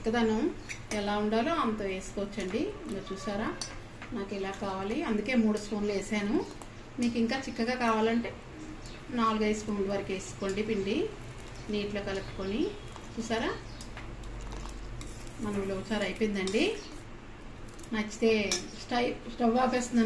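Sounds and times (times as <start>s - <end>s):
ladle scraping metal pot: 14.4s - 17.0s.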